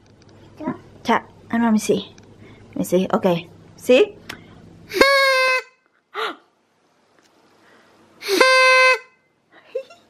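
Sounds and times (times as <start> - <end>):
toy horn toots: 4.9 - 5.8, 8.2 - 9.2.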